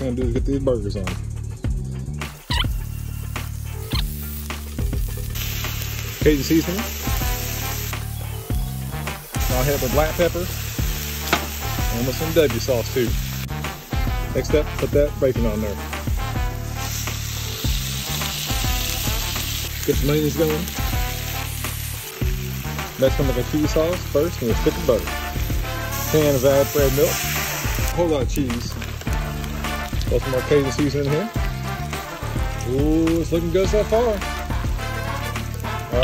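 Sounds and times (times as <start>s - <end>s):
background music with bass: 0.0s - 36.0s
ground beef sizzling on griddle: 2.1s - 36.0s.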